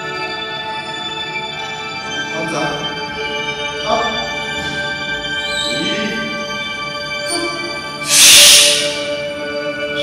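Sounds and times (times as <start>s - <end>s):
sustained tone music: 0.0s - 10.0s
hissing whoosh: 8.0s - 9.2s.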